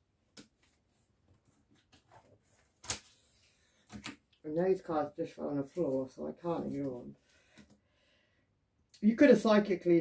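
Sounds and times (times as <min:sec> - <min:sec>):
cards being handled: 0:01.6 - 0:04.4.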